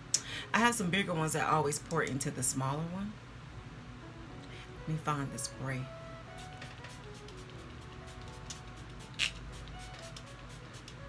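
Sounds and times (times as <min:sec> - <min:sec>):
background music: 0:03.4 - 0:11.0
spray bottle hiss: 0:06.4 - 0:11.0.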